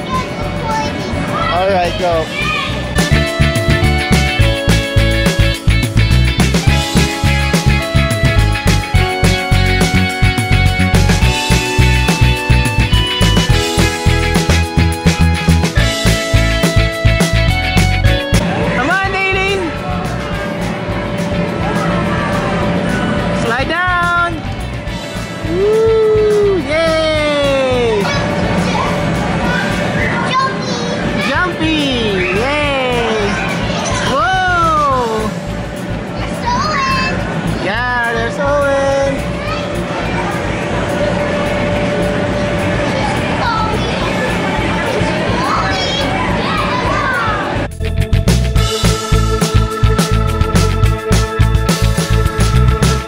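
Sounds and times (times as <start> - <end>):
air blowers running: 0.0 - 47.7
background music: 0.0 - 53.0
children shouting: 2.2 - 2.9, 25.5 - 31.4, 39.4 - 47.7.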